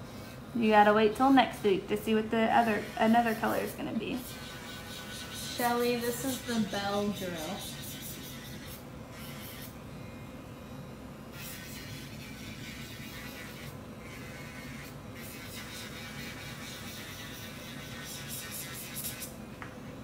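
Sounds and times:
drill bit filing nails: 2.6 - 9.8.

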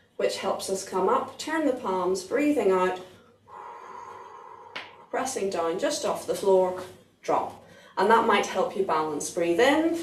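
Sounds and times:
quick breath in: 3.3 - 5.1
person breathing out through mouth: 3.5 - 5.1.

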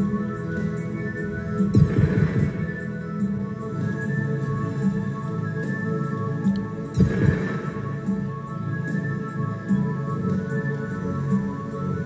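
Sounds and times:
deep thudding sound effect: 1.8 - 2.7.

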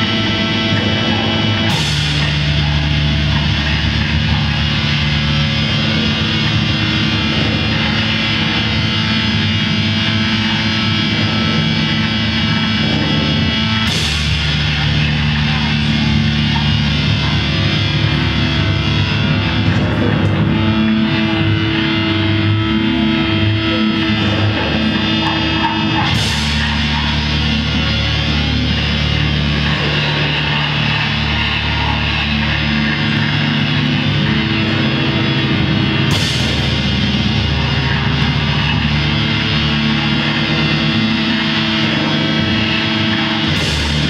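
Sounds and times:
distorted electric guitar: 0.0 - 44.0
drums: 0.0 - 44.0
sustained droning tones: 0.0 - 44.0.

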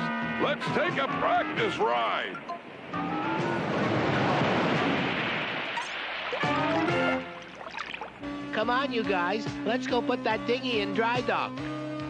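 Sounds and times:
background music: 0.0 - 5.1, 6.4 - 12.0
cartoon wave breaking: 3.0 - 7.4.

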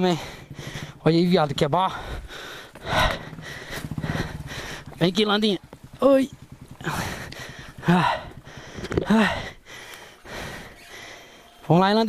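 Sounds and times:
forceful breath out: 2.0 - 5.0, 6.9 - 11.6.

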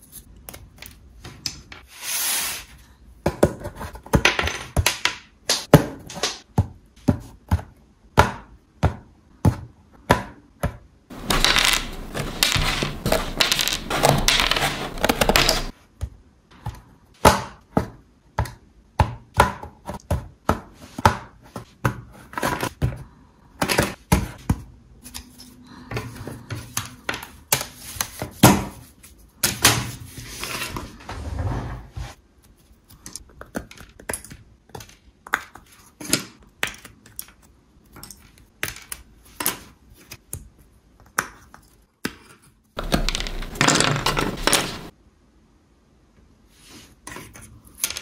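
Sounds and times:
wooden pieces snapping: 11.1 - 15.7
plywood sliding over wooden table: 30.5 - 32.2.

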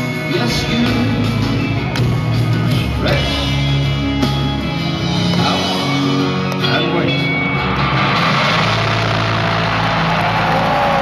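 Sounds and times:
concert crowd cheering: 0.0 - 11.0.

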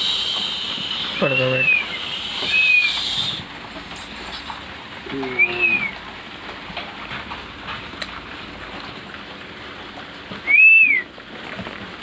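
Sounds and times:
high whistled note: 0.0 - 3.4
steady background hiss: 0.0 - 6.4.

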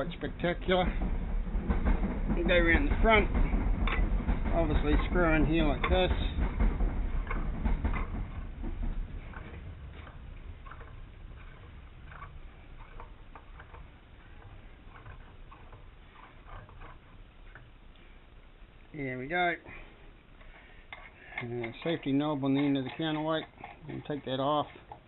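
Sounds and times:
metal threads ticking and scraping: 0.0 - 25.0.

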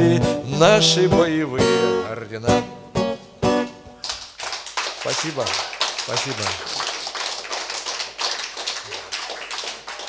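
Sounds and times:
audience applauding: 4.0 - 10.0.

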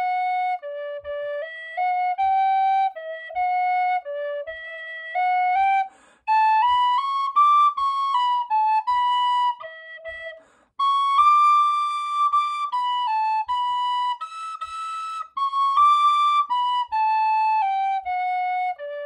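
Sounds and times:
tin whistle melody: 0.0 - 19.0.

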